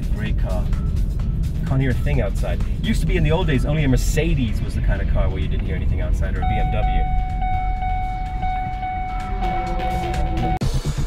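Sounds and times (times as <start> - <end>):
car road and engine rumble: 0.0 - 11.0
high electronic tone: 6.4 - 10.9.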